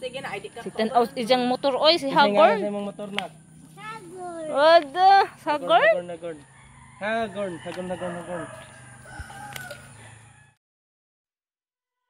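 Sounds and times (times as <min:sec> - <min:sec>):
rooster crowing: 0:06.2 - 0:10.6.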